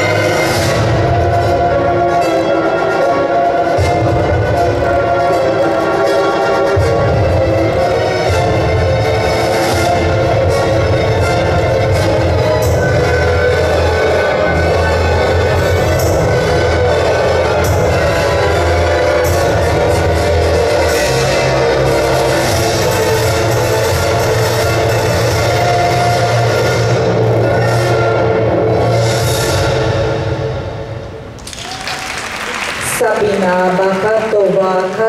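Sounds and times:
loud music with bass line: 0:06.7 - 0:30.4.

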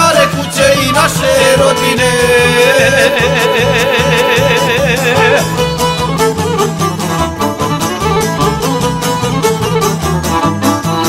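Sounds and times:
rhythmic string accompaniment: 0:00.0 - 0:11.0
held vocal note with vibrato: 0:01.1 - 0:06.2.

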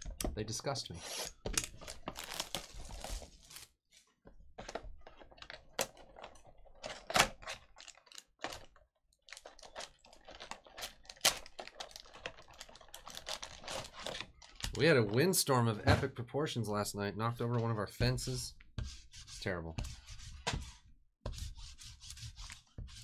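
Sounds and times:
foil packs rustling: 0:06.7 - 0:14.8
plastic shrink-wrap crackling: 0:07.5 - 0:14.7.

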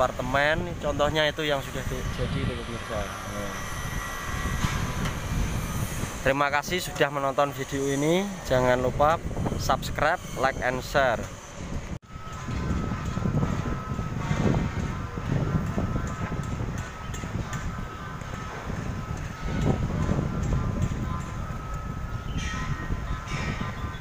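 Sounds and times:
faint steady whine: 0:00.0 - 0:24.0.

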